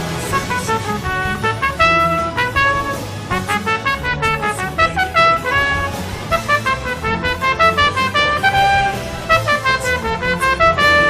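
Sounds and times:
trumpet playing fast notes: 0.3 - 11.0.

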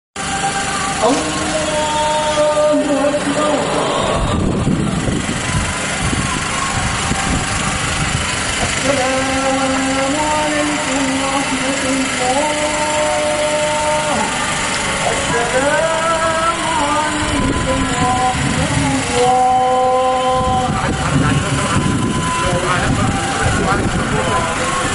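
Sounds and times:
many voices rising together: 0.2 - 24.9
outdoor crowd: 0.2 - 24.9
man chanting: 0.6 - 4.9, 8.6 - 24.9.

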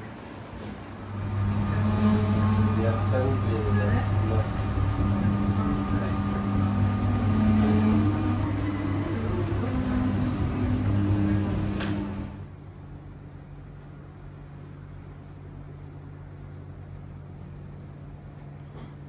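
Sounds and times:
electric motor hum and whine: 0.8 - 19.0
faint steady hum: 0.9 - 19.0.

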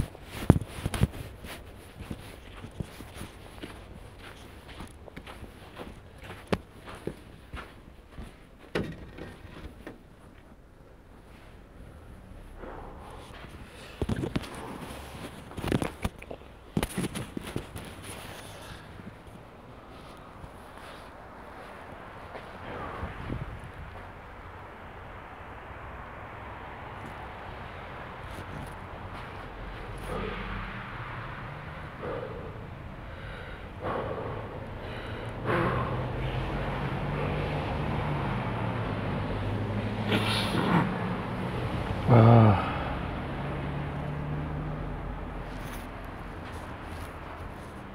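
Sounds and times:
footsteps on slushy sidewalk: 0.0 - 8.7, 13.0 - 24.2, 26.7 - 32.2, 34.9 - 42.0, 42.7 - 47.9
car engine hum passing: 0.0 - 47.9
street traffic noise: 0.0 - 47.9.

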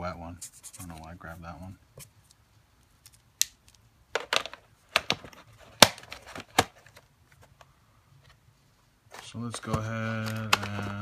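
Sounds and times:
plastic marker caps clicking: 9.6 - 11.0.

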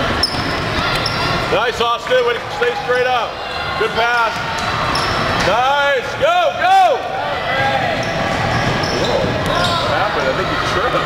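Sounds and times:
gym crowd noise: 0.0 - 11.0
sneakers squeaking on hardwood: 7.8 - 10.0.

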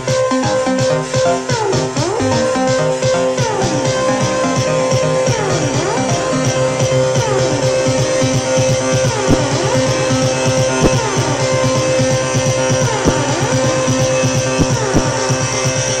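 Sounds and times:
electronic dance music: 0.0 - 16.0.

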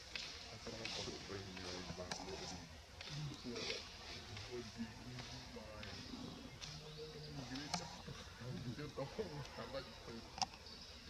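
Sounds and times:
insects buzzing: 0.0 - 11.0.

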